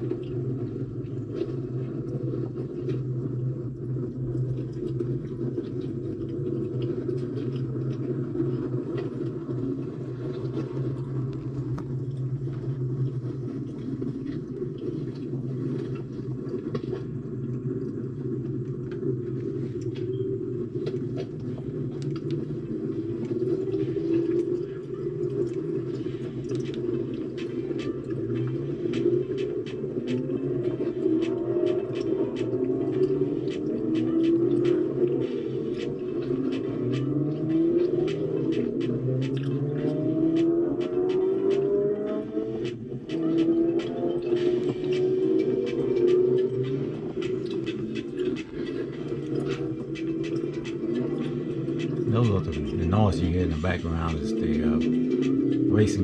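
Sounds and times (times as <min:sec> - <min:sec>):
race car engines rumbling: 0:00.0 - 0:56.0
engine revving: 0:20.4 - 0:56.0.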